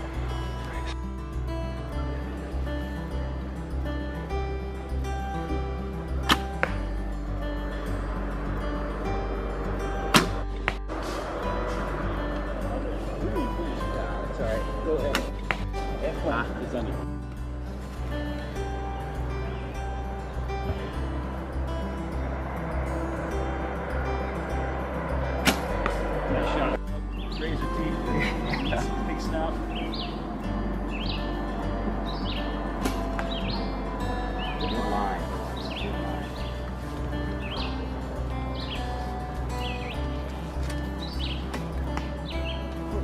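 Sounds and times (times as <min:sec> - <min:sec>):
background music: 0:00.0 - 0:43.0
bowstring snap: 0:06.3 - 0:06.8, 0:25.4 - 0:26.0.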